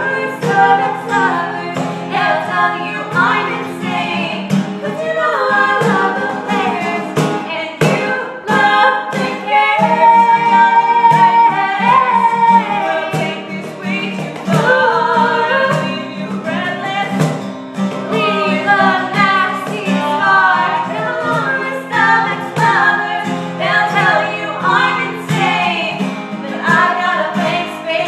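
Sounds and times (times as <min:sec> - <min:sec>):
women singing in harmony: 0:00.0 - 0:17.4, 0:18.0 - 0:28.0
strummed acoustic guitar: 0:00.0 - 0:28.0
hand strikes on a cajon: 0:05.4 - 0:28.0.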